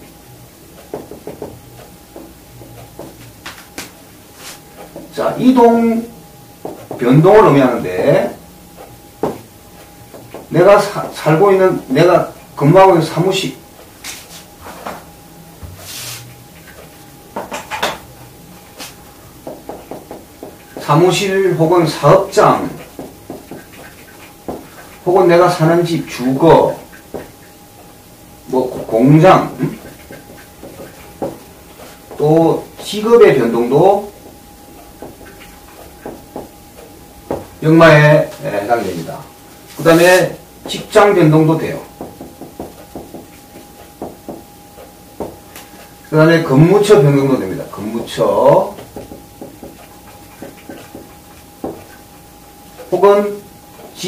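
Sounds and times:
marker pen on whiteboard: 0.7 - 54.0
marker tapping on whiteboard: 0.8 - 2.3, 3.0 - 3.9, 6.6 - 7.1, 9.2 - 9.4, 19.4 - 21.0, 22.8 - 24.9, 26.9 - 27.5, 29.8 - 31.5, 34.2 - 37.5, 41.9 - 45.6, 48.7 - 52.0
marker scratching on whiteboard: 4.4 - 5.1, 6.6 - 7.0, 22.1 - 25.3, 26.1 - 27.9, 28.8 - 37.5, 41.8 - 45.9, 48.6 - 52.1.

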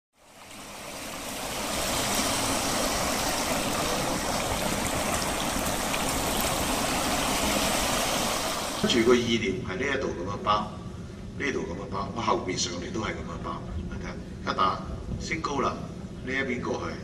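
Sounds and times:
fountain water splashing: 0.1 - 9.3.

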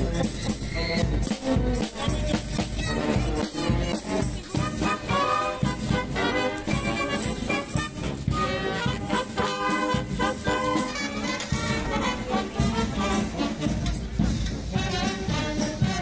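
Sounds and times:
marching brass band: 0.0 - 16.0
regular drum beat: 0.0 - 16.0
trumpets: 0.0 - 16.0.

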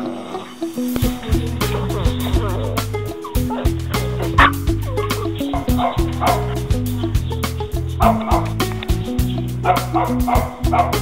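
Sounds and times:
background music: 0.0 - 11.0
puppy barking: 3.2 - 6.6, 8.0 - 8.6, 9.6 - 11.0.

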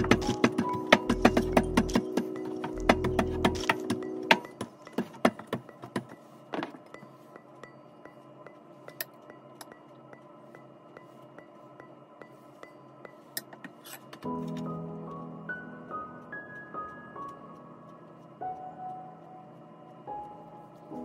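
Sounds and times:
rolling pin knocking on countertop: 0.0 - 6.8
faint background music: 0.0 - 21.0.

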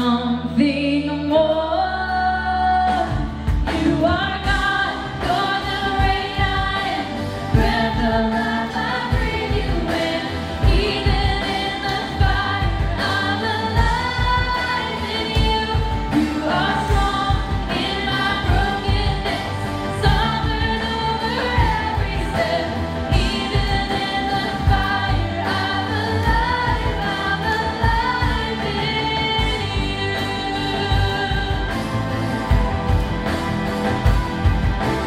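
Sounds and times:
women singing: 0.0 - 32.7
acoustic guitar: 0.0 - 35.0.

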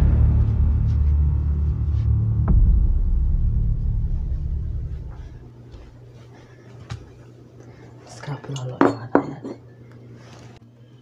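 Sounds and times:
low electrical hum: 0.0 - 11.0
dishes clinking: 8.4 - 9.8.

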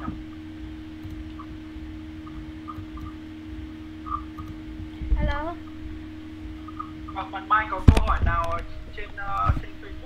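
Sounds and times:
faint hiss and rumble: 0.0 - 10.0
low electrical hum: 0.0 - 10.0.

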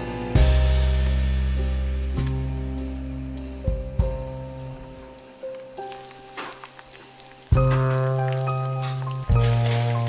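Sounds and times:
background music with bass chords: 0.0 - 5.8, 7.5 - 10.0
eggs sizzling in a pan: 5.1 - 10.0.

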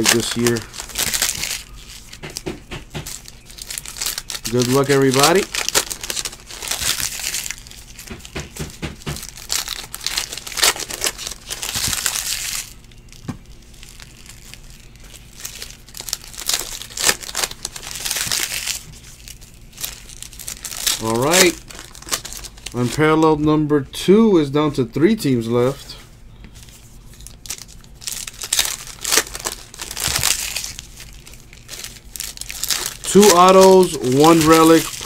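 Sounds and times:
foil wrappers crinkling and tearing: 0.0 - 23.3, 26.5 - 35.0.

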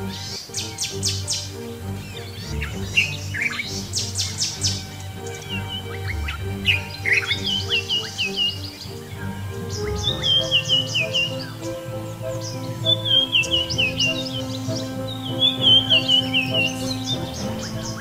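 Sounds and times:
birds chirping and trilling: 0.0 - 18.0
low sustained background music: 0.0 - 18.0.

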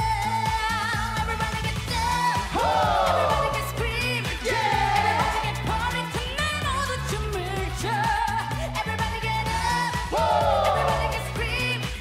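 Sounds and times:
pop dance song sung live: 0.0 - 12.0
repeating bass line: 0.0 - 12.0.

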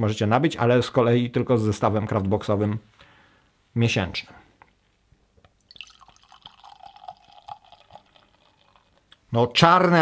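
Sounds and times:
liquid pouring into a glass: 5.6 - 9.1.

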